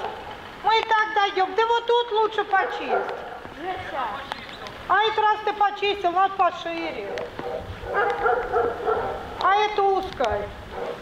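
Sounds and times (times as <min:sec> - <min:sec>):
dog yelping: 0:02.6 - 0:03.5, 0:07.1 - 0:09.4, 0:10.7 - 0:11.0.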